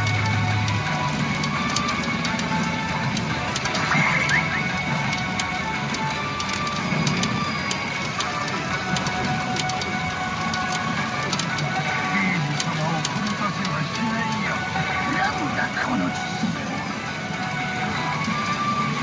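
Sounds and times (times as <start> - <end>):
pachinko machine music and effects: 0.0 - 19.0
steel balls clicking: 0.0 - 19.0.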